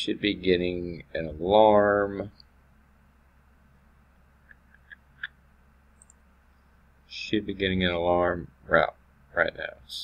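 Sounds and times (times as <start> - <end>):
low electrical hum: 0.0 - 10.0
computer mouse clicks: 6.0 - 6.2.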